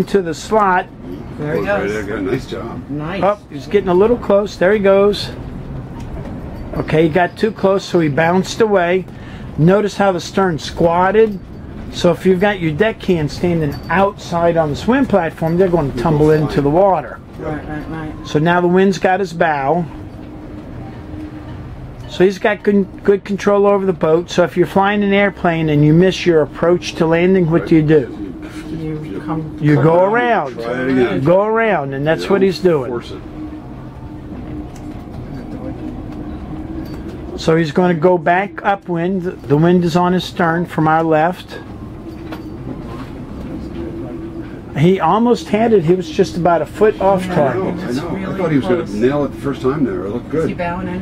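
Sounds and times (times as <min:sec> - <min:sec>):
boat engines rumbling: 0:00.0 - 0:51.0
faint constant hum: 0:00.0 - 0:51.0.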